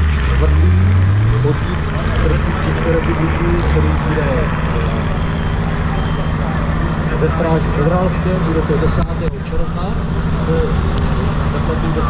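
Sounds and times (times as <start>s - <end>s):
off-road vehicle engine: 0.0s - 12.0s
people talking: 0.0s - 12.0s.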